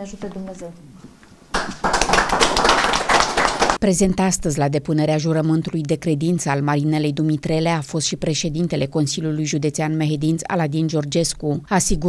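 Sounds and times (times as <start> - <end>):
people clapping: 1.5 - 3.8.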